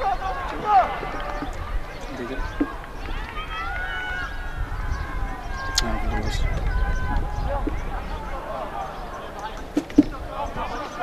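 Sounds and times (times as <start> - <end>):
distant people shouting: 0.0 - 11.0.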